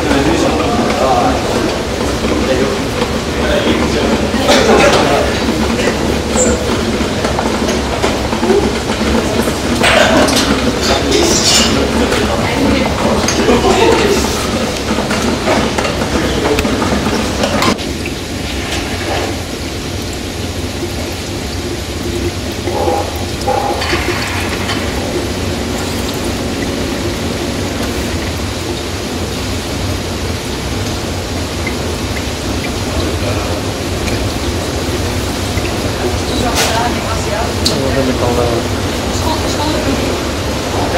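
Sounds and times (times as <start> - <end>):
steam distillation unit rushing: 0.0 - 40.9.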